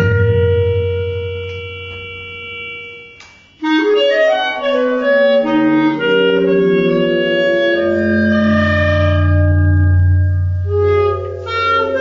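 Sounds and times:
clarinet playing: 0:00.0 - 0:12.0.

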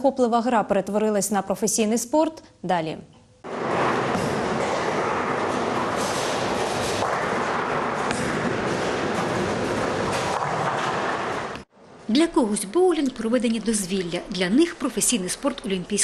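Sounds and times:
bowling balls rolling on lanes: 0:03.4 - 0:11.7
bowling pins knocking: 0:03.5 - 0:11.7.

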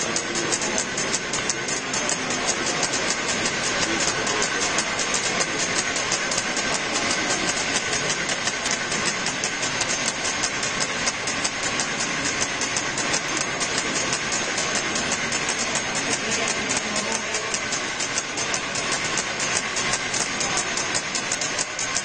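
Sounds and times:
crowd hubbub echoing: 0:00.0 - 0:22.0
fast even clicking: 0:00.0 - 0:22.0.

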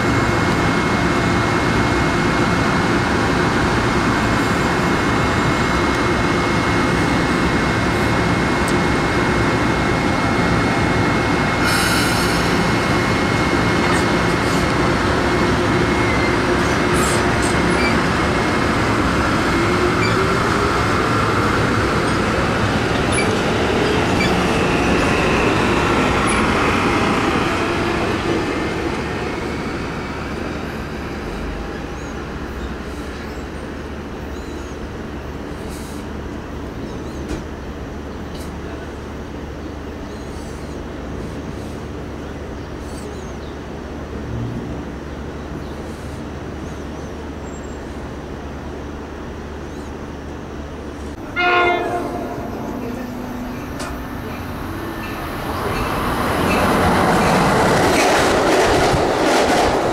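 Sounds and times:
train whine rising in pitch: 0:00.0 - 0:32.2, 0:51.1 - 0:59.9
train wheels rumbling on rail: 0:00.0 - 0:59.9.

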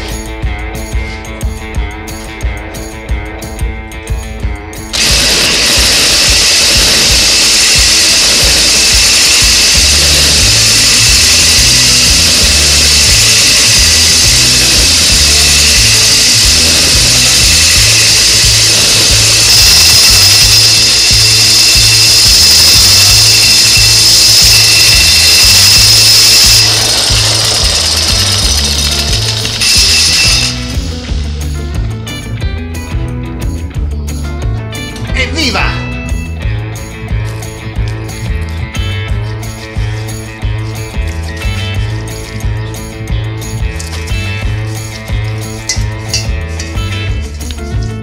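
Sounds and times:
background music with bass line: 0:00.0 - 0:48.0
drill grinding through glass: 0:04.9 - 0:31.3.

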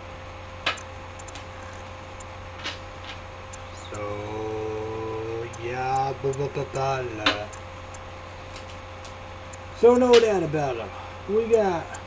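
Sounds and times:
low steady hum: 0:00.0 - 0:12.0
man saying uhh: 0:03.8 - 0:05.6.

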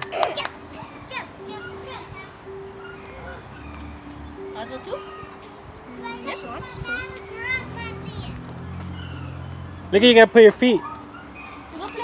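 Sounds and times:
children calling: 0:00.0 - 0:12.0.

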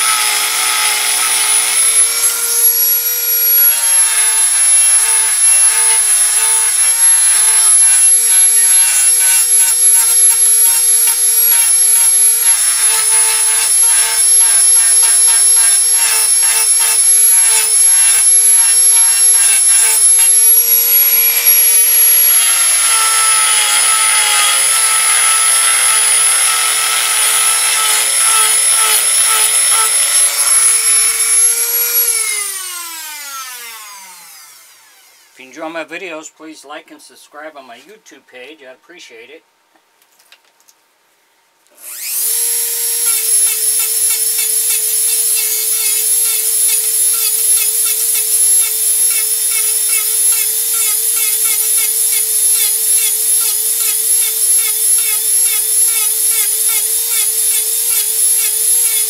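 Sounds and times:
rotary tool whine: 0:00.0 - 0:35.4, 0:41.8 - 0:59.0
bit grinding into wood: 0:03.5 - 0:33.2, 0:41.9 - 0:59.0.

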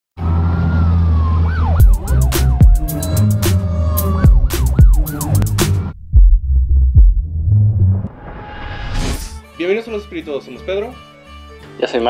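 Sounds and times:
eerie synthesized music: 0:00.2 - 0:06.0
siren-like pitch sweeps: 0:00.2 - 0:06.0
deep drone: 0:00.2 - 0:09.4.

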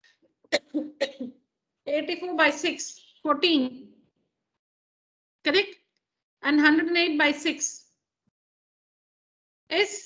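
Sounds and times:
woman coughing: 0:00.5 - 0:01.3.

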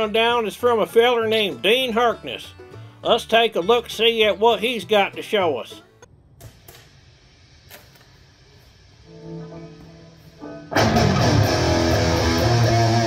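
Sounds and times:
electric guitar notes and riff: 0:09.0 - 0:13.0.

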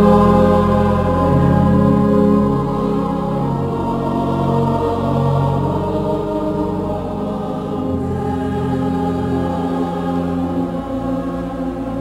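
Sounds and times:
church choir singing held chords: 0:00.0 - 0:12.0.

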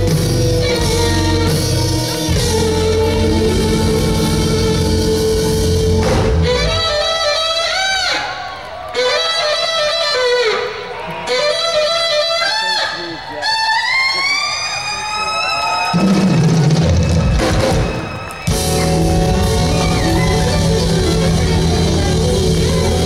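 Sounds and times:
electric bass: 0:00.0 - 0:06.9, 0:18.5 - 0:23.0
drum kit: 0:00.0 - 0:07.0, 0:15.9 - 0:23.0
alto saxophone solo: 0:00.0 - 0:08.3, 0:09.0 - 0:14.2, 0:18.5 - 0:23.0.

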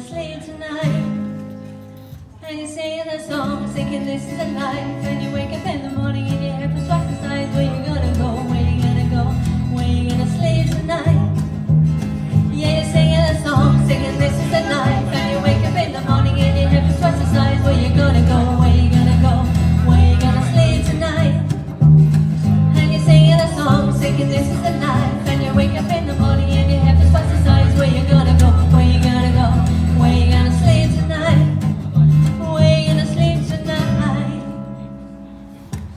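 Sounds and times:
small live band playing: 0:00.0 - 0:02.5, 0:03.3 - 0:35.9
strummed acoustic guitar: 0:00.0 - 0:35.9
bass guitar: 0:03.6 - 0:35.9
person singing: 0:12.3 - 0:21.6.

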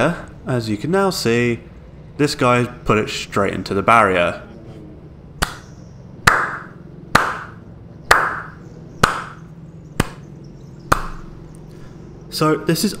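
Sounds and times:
low steady hum: 0:00.0 - 0:13.0
hand claps with echo: 0:06.3 - 0:09.4.

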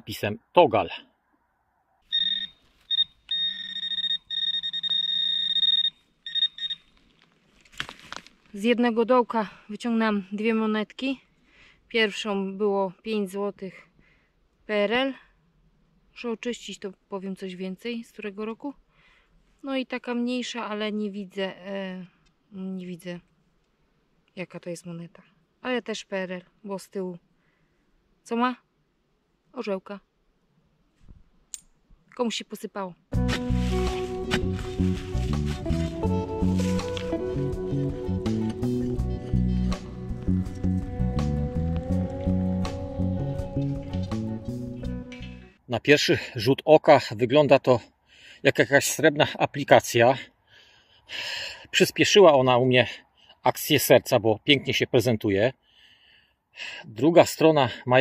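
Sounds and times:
metal detector electronic tone: 0:02.1 - 0:06.9
handling rustle: 0:06.7 - 0:08.6, 0:33.2 - 0:37.3.

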